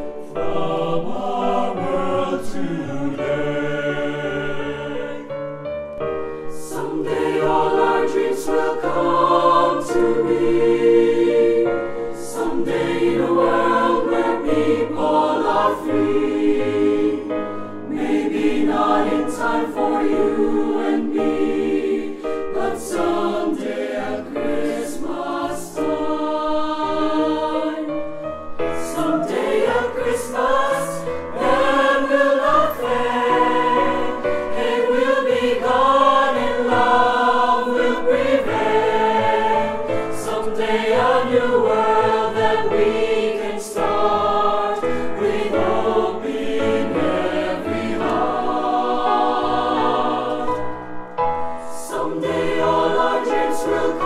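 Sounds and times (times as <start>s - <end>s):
mixed choir singing in harmony: 0.0s - 54.0s.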